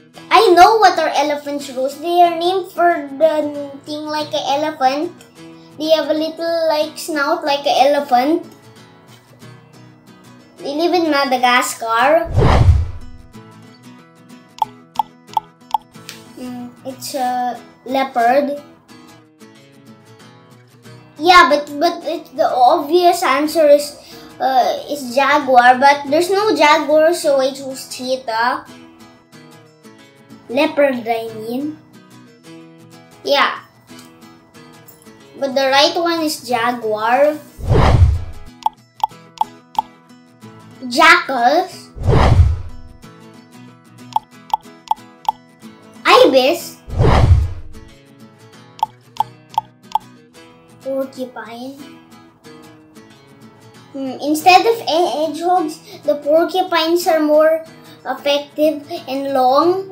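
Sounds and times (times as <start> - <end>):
soft background music: 14.6 - 20.0
pop sound effects: 37.6 - 39.1.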